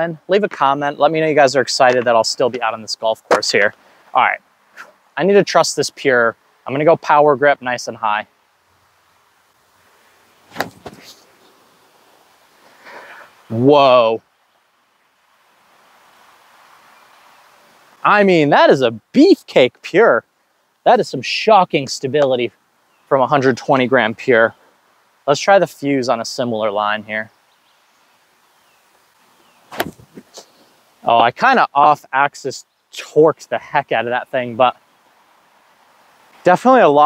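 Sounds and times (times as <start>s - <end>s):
faint outdoor background: 0.0s - 37.0s
sharp knocks and scuffs: 10.5s - 11.2s, 29.7s - 30.5s
disc throw swish: 10.5s - 11.3s, 29.7s - 30.5s.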